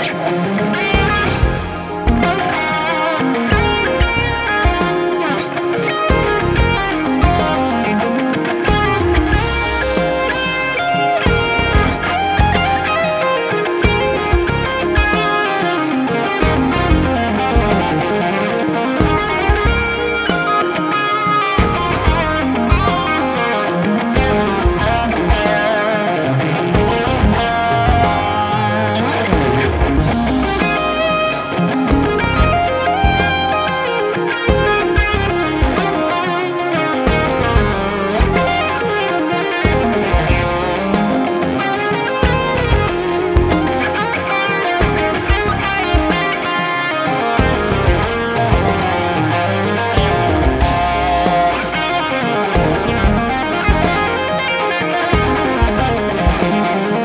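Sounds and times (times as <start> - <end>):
electric guitar lead lines: 0.0 - 57.0.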